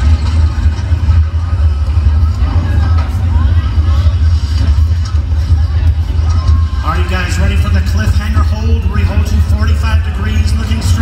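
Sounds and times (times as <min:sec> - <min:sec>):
crowd voices: 0:00.0 - 0:11.0
heavy low rumble: 0:00.0 - 0:11.0.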